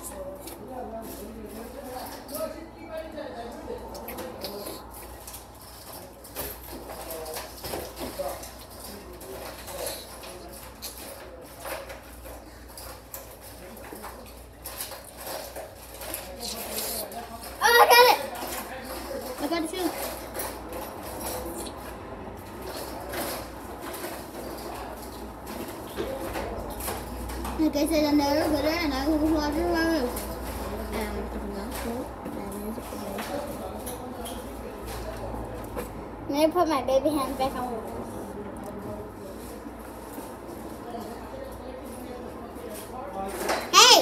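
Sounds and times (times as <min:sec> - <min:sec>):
child's voice: 0:27.6 - 0:30.2, 0:30.9 - 0:33.1, 0:43.7 - 0:44.0
child squealing: 0:43.7 - 0:44.0.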